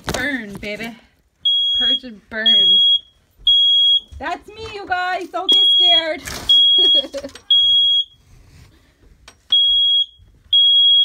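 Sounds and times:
smoke alarm beeping: 1.4s - 4.7s, 5.3s - 8.3s, 9.4s - 11.0s.

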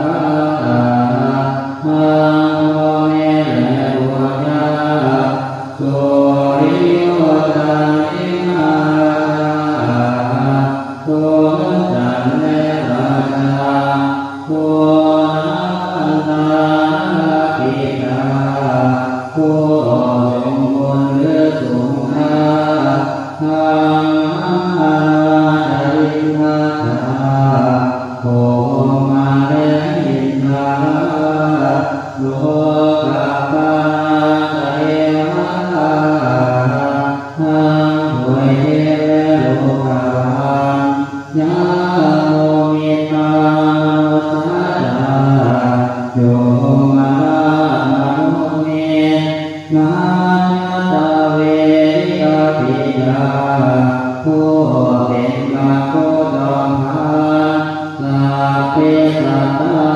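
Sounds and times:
monks chanting in unison: 0.0s - 59.9s.

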